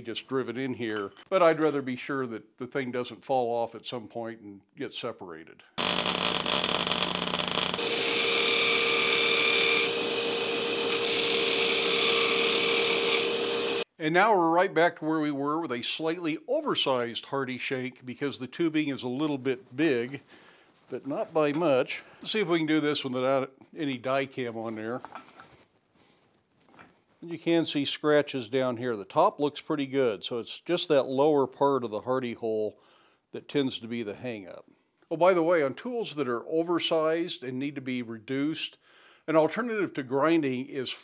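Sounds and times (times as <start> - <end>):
arc welding crackling: 5.8 - 11.6
belt grinder humming: 5.8 - 13.8.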